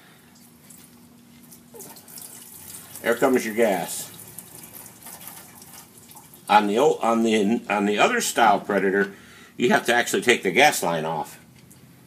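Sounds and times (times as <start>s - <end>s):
gasoline splashing into a pan: 1.5s - 6.6s.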